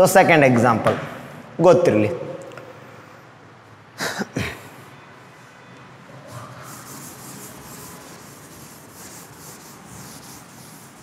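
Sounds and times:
duster wiping a blackboard: 6.2 - 11.0.

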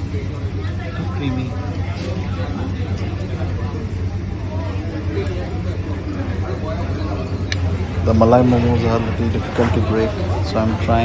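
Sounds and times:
background chatter: 0.0 - 11.0
steady low hum: 0.0 - 11.0.

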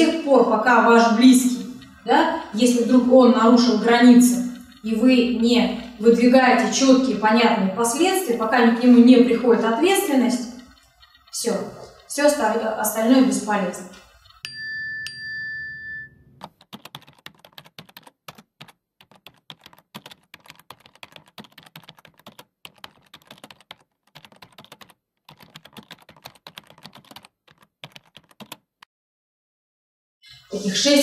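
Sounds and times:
keyboard typing clicks: 3.7 - 6.0, 10.3 - 13.0, 16.4 - 28.7
bright chime: 14.5 - 16.3.

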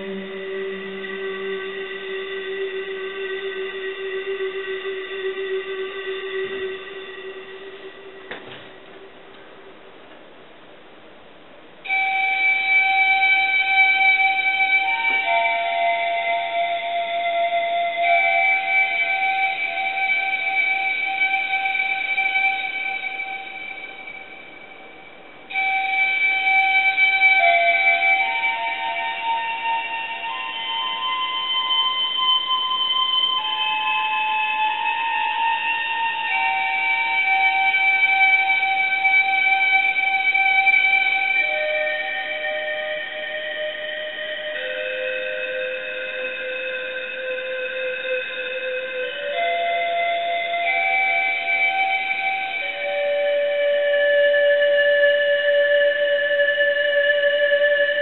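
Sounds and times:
synthesized pan flute: 0.0 - 9.9, 11.8 - 58.0.

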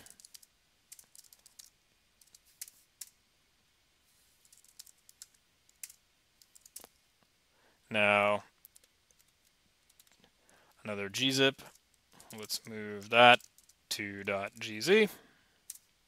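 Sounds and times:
computer keyboard typing: 0.0 - 3.1, 4.4 - 6.9, 8.6 - 10.2, 11.6 - 14.6.

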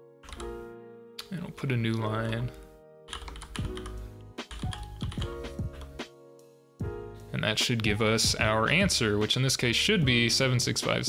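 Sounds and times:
background music: 0.0 - 11.0
computer keyboard typing: 0.2 - 0.5, 3.1 - 6.0.

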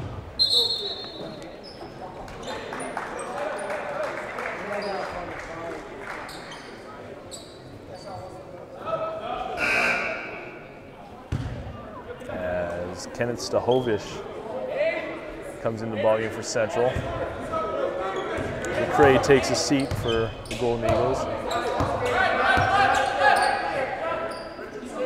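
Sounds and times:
voices echoing in a hall: 0.0 - 25.0
sneakers squeaking on court: 0.1 - 2.8, 6.3 - 8.4, 18.1 - 24.8.

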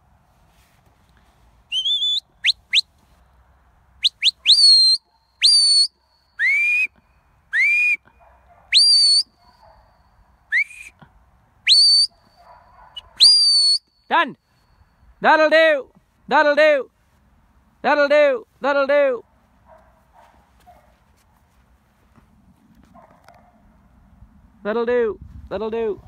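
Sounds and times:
short rising whistle blasts: 1.7 - 3.0, 4.0 - 8.0, 8.7 - 9.4, 10.5 - 11.0, 11.7 - 12.4, 13.0 - 15.0.

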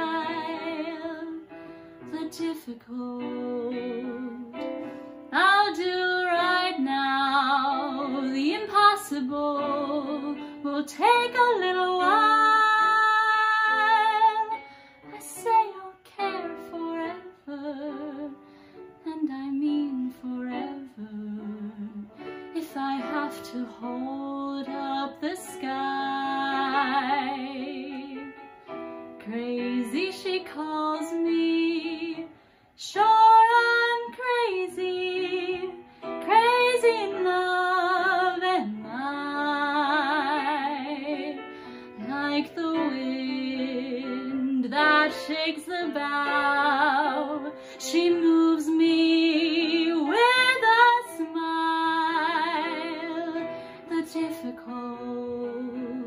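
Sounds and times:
woman singing: 0.0 - 28.4, 29.2 - 56.0.

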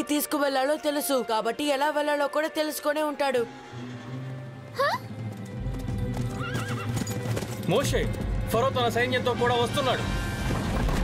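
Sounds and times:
music: 0.0 - 11.0
horse hooves clattering: 5.0 - 9.2
horse whinnying: 6.2 - 7.2.

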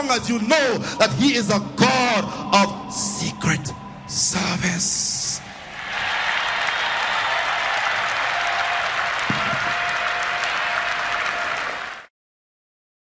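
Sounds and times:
audience applauding: 5.7 - 12.1.

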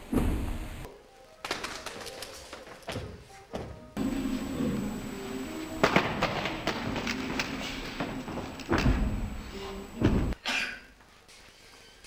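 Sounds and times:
background music: 0.0 - 10.4.

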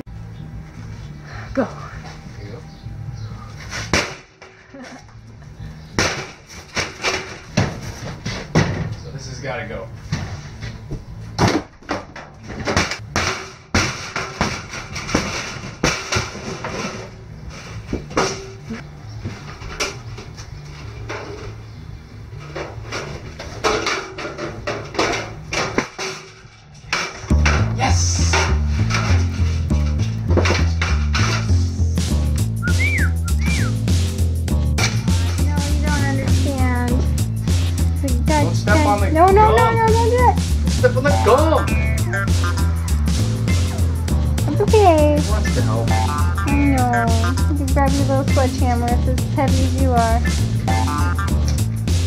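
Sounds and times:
wooden boards knocking and clattering: 6.0 - 9.0, 11.4 - 17.1, 22.5 - 31.6
music with heavy bass beat: 27.3 - 52.0
voice-like melody: 35.1 - 37.1, 38.0 - 51.5.

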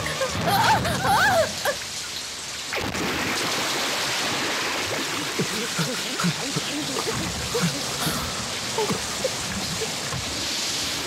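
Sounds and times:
rushing water: 0.0 - 11.0
splash into water: 2.6 - 6.4.

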